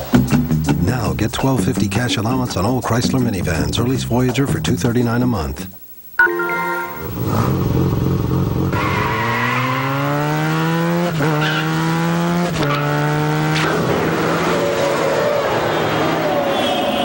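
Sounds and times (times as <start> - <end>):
car engine accelerating hard: 7.2 - 16.6.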